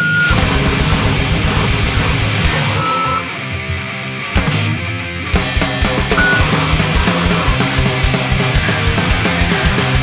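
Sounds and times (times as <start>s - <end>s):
distorted guitars: 0.0s - 10.0s
rapid dense drumming: 0.3s - 3.3s, 5.4s - 10.0s.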